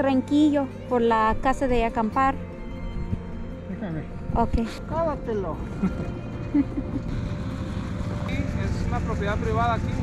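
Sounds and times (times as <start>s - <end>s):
engine idling low rumble: 5.5s - 10.0s.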